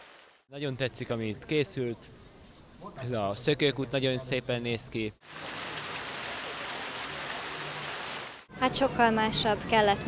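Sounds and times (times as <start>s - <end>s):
fountain water splashing into pool: 5.2s - 8.4s.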